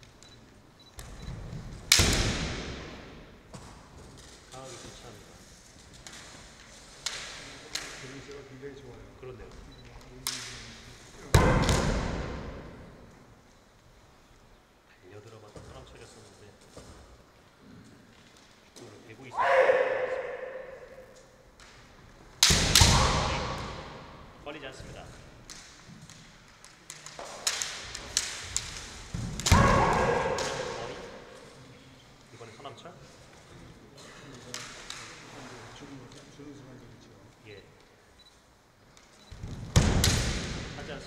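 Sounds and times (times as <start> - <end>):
bamboo sword strikes cracking: 1.9 - 2.9, 22.4 - 24.0, 25.5 - 31.3
loud shouts: 19.3 - 21.0, 29.5 - 31.2.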